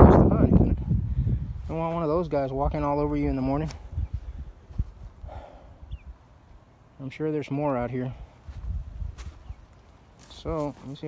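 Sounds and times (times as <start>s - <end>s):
microphone handling rumble: 0.0s - 6.2s, 8.4s - 9.6s
breathy puff: 5.2s - 5.9s
faint high chirp: 5.8s - 6.2s
footfalls on dry leaves: 8.5s - 9.4s, 10.1s - 11.0s.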